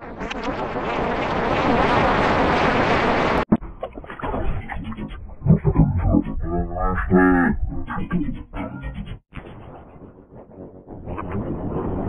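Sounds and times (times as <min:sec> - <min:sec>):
processed muffled voice: 0:03.6 - 0:09.5.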